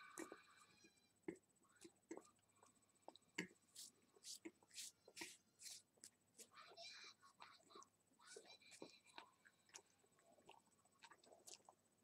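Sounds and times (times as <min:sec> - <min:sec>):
faint whispering voice: 0:06.4 - 0:09.3.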